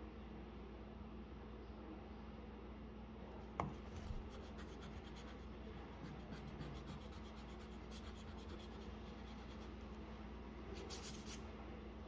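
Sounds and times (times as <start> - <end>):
pencil scratching on paper: 3.6 - 9.9, 10.8 - 11.4.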